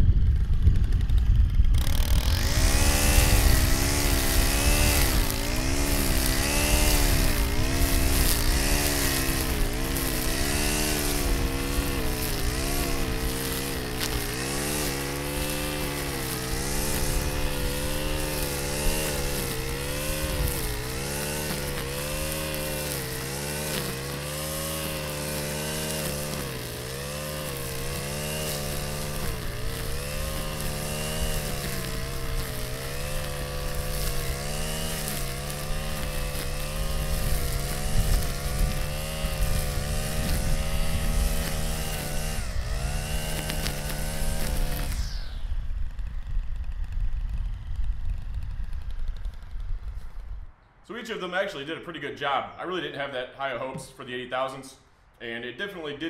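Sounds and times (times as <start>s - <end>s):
string trimmer engine revving: 0.0s - 50.4s
trimmer line cutting grass: 0.0s - 50.6s.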